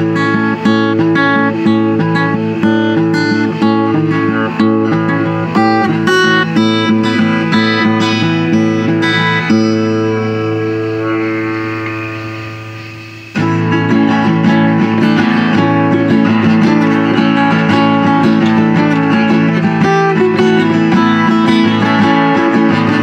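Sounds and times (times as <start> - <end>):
acoustic guitar strumming chords: 0.0 - 23.0.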